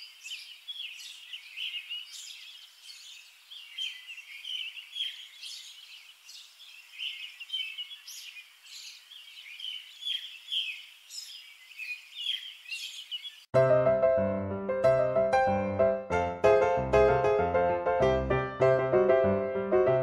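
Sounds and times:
small birds chirping: 0.0 - 13.5.

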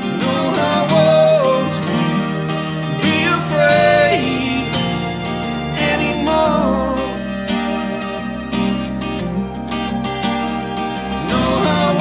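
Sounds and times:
person singing: 0.0 - 8.6, 10.9 - 12.0
cello: 0.0 - 12.0
double bass: 0.0 - 12.0
strummed acoustic guitar: 0.0 - 12.0
violin: 0.0 - 12.0.

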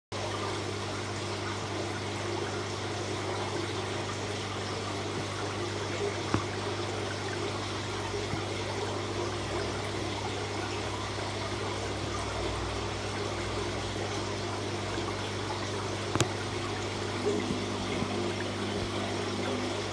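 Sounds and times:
aquarium water trickling: 0.2 - 19.9
constant low hum: 0.6 - 19.9.

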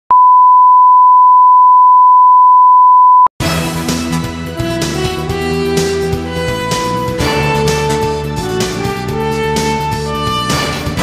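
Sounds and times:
theme music: 3.4 - 11.0.

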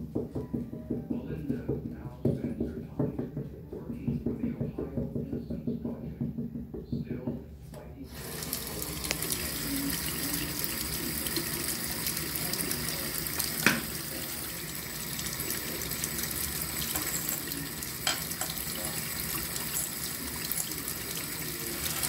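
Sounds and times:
water running into sink: 8.1 - 22.0.

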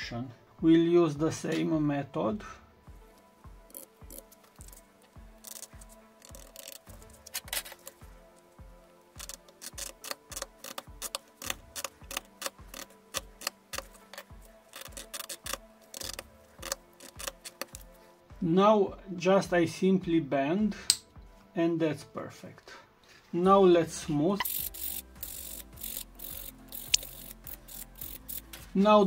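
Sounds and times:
background music with low beat: 0.0 - 29.0
scribe scraping plastic strip: 3.7 - 4.8, 5.4 - 8.0, 9.2 - 17.9, 24.4 - 28.6.

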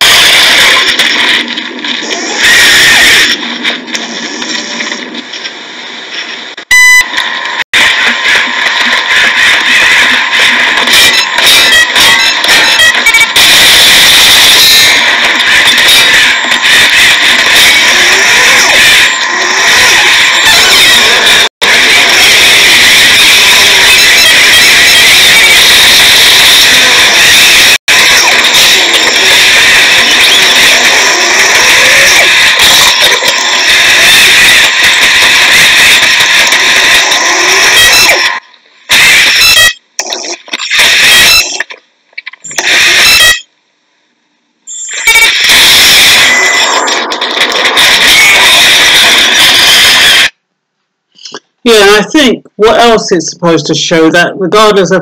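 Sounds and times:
video soundtrack from phone speaker: 0.0 - 43.6, 44.7 - 50.4, 51.2 - 55.0.

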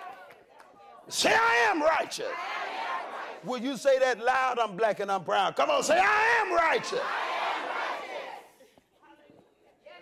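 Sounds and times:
congregation shouting together: 1.0 - 3.7, 5.6 - 8.6.

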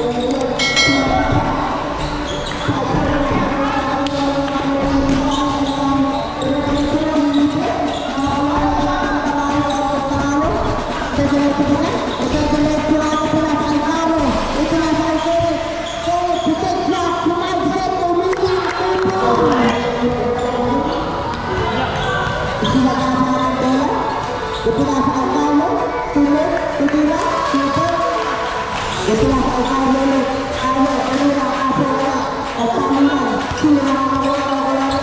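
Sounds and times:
basketball bouncing in hall: 0.0 - 35.0.

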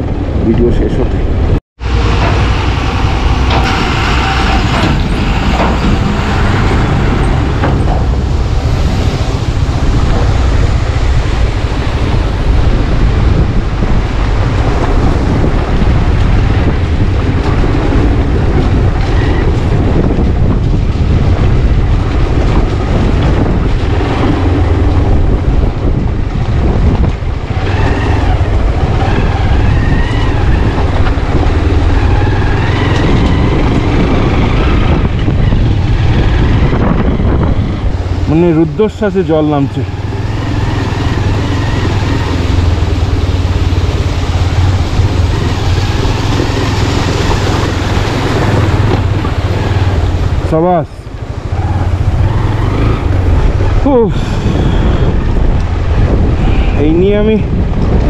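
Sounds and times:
dump truck passing: 1.2 - 56.8
motorcycle engine running: 1.8 - 58.0.

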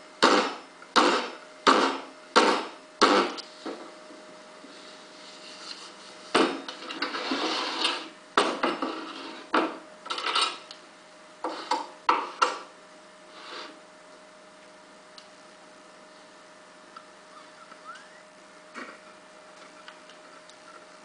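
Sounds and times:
faint steady hum: 0.0 - 21.0
plaster scraping: 5.2 - 8.1.

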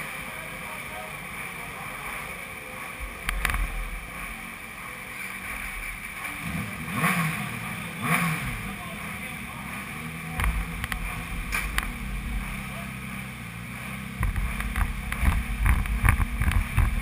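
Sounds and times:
motorcycle engine idling: 0.0 - 17.0
motorcycle throttle blips: 10.2 - 17.0.

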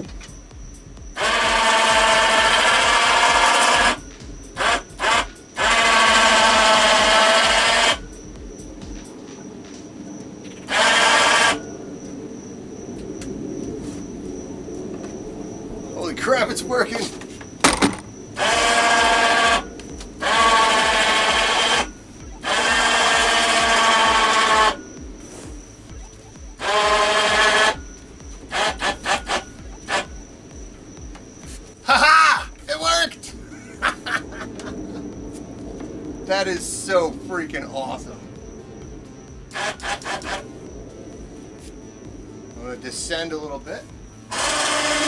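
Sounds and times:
electric winch motor whining: 1.2 - 8.2, 10.5 - 12.0, 15.0 - 25.2, 25.8 - 31.2, 39.3 - 40.7, 43.2 - 45.0.

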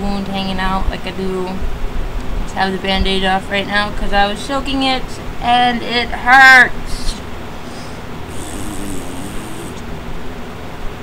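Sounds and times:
background hiss: 7.6 - 10.1.

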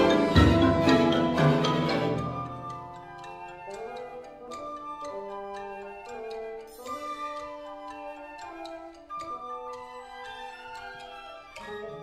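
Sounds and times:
marimba notes: 0.0 - 12.0.

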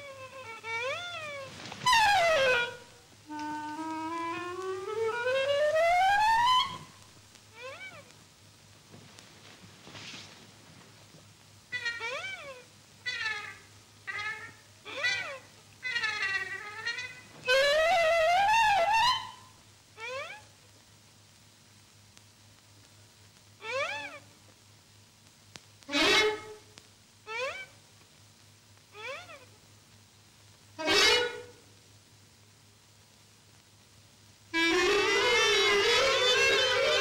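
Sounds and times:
cat meowing: 0.0 - 2.8, 7.6 - 8.1, 11.8 - 17.2.

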